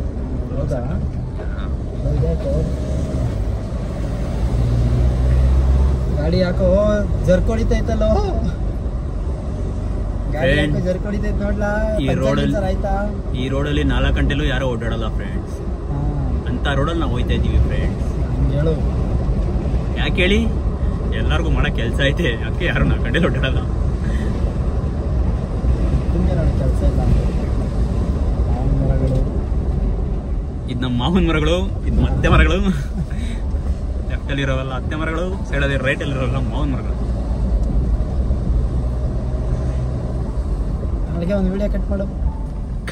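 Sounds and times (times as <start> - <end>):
car engine and tyre rumble: 0.0 - 42.9
person speaking: 11.8 - 12.8.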